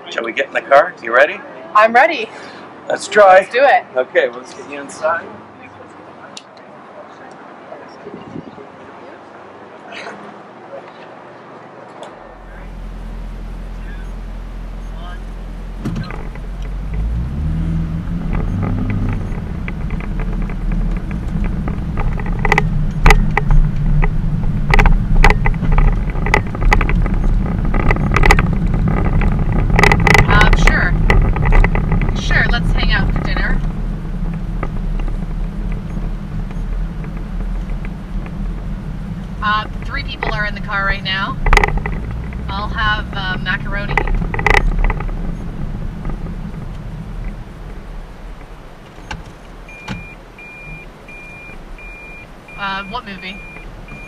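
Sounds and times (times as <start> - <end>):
car engine rumble from inside: 12.1 - 54.0
sharp clicks and knocks: 15.8 - 52.6.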